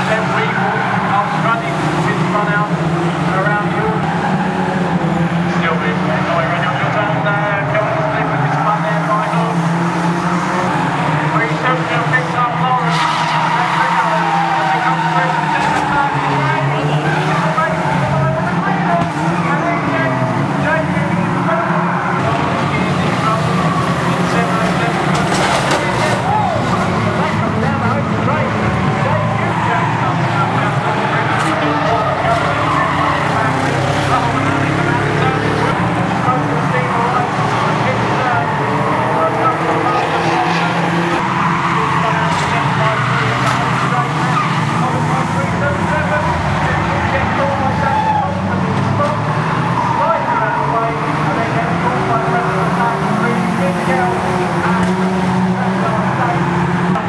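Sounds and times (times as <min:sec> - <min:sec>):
racing car engines running hard: 0:00.0 - 0:57.0
tyres skidding: 0:00.0 - 0:57.0
cars crashing with sharp bangs: 0:08.3 - 0:57.0.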